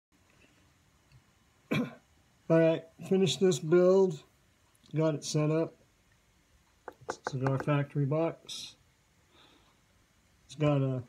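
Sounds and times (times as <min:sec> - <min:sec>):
person coughing: 0:01.7 - 0:02.0.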